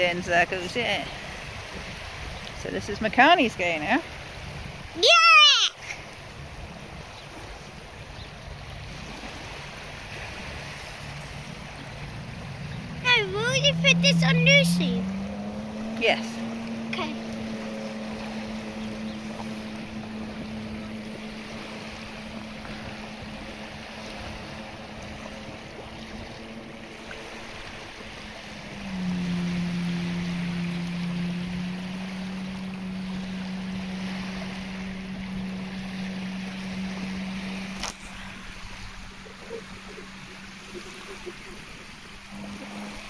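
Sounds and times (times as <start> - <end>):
jet ski engine droning: 0.0 - 43.0
wind: 0.0 - 43.0
lapping water: 8.7 - 43.0.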